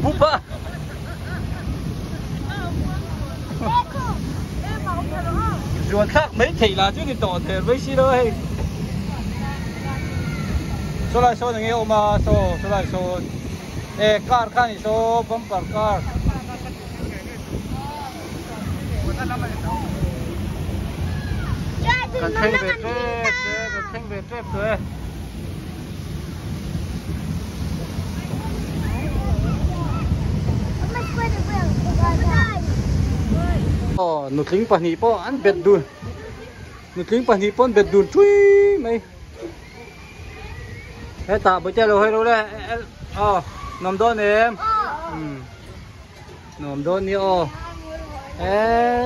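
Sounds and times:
steady low rumble: 0:00.0 - 0:34.0
voices calling out: 0:00.0 - 0:49.0
wind buffeting microphone: 0:00.0 - 0:49.0.

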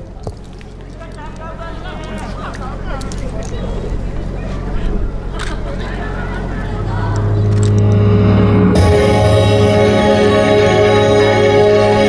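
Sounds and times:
murmur of spectators' voices: 0:00.0 - 0:11.6
loudspeaker hum: 0:05.2 - 0:12.0
deep droning dance music: 0:06.3 - 0:12.0.

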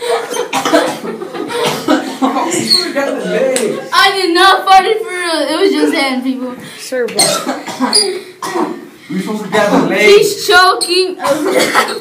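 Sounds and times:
person coughing: 0:00.0 - 0:02.2, 0:07.2 - 0:08.8, 0:11.2 - 0:12.0.

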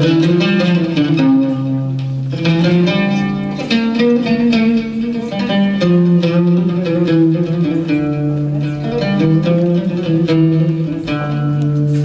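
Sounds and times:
double bass: 0:00.0 - 0:12.0
plucked lute strings: 0:00.0 - 0:12.0.

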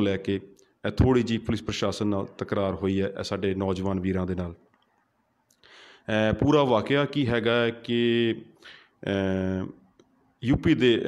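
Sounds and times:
man speaking into a microphone: 0:00.0 - 0:04.7, 0:06.0 - 0:09.8, 0:10.4 - 0:11.0
soft breath: 0:05.6 - 0:06.1, 0:08.6 - 0:09.0.

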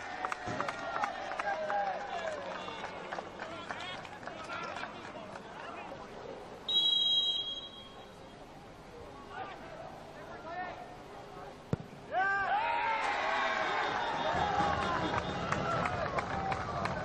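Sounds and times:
referee's whistle blast: 0:06.7 - 0:08.1
players shouting: 0:12.1 - 0:17.0.

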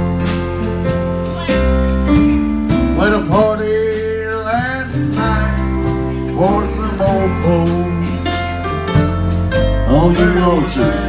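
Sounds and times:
bass: 0:00.0 - 0:11.0
lead guitar melody: 0:00.0 - 0:11.0
steady drum beat: 0:00.0 - 0:11.0.

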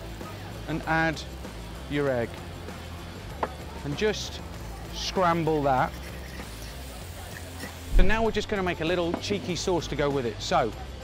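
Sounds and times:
egg sizzling in a wok: 0:04.3 - 0:08.6
low bump: 0:07.9 - 0:09.2.

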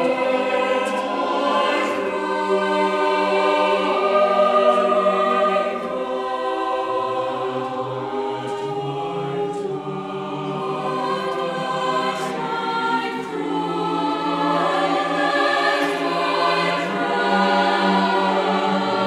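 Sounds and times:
mixed choir singing: 0:00.0 - 0:19.0.

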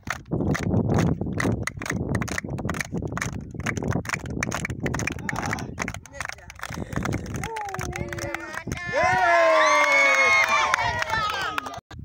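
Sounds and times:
children clapping: 0:00.1 - 0:11.8.

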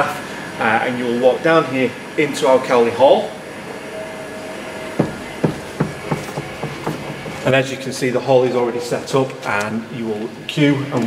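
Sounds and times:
low room hum: 0:00.0 - 0:11.0
footsteps on hard floor: 0:05.0 - 0:07.5.

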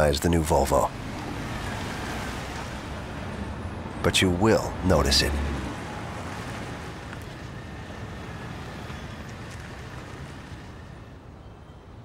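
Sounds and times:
car driving past: 0:05.0 - 0:10.7.

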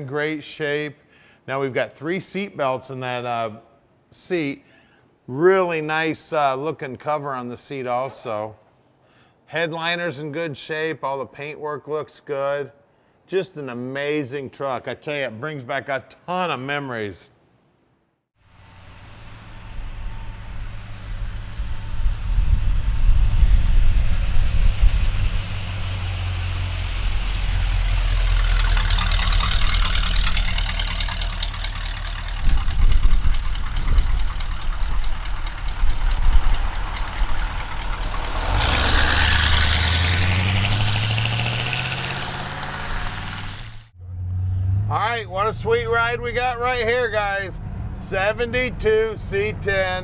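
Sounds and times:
truck engine rumbling: 0:18.5 - 0:50.0
engine revving: 0:18.6 - 0:46.8.

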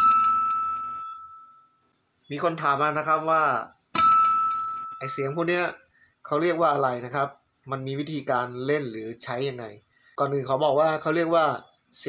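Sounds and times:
acoustic guitar harmonic ringing: 0:00.0 - 0:01.9, 0:04.0 - 0:06.1.

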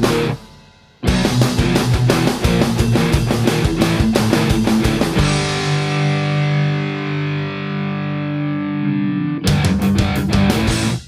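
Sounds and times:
rock band hits with drums: 0:00.0 - 0:08.2, 0:09.4 - 0:11.0
distorted electric guitar chord: 0:00.0 - 0:11.0.

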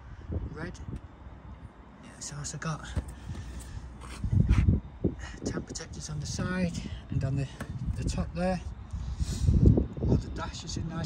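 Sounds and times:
wind buffeting the microphone: 0:00.0 - 0:01.8, 0:02.9 - 0:11.0.

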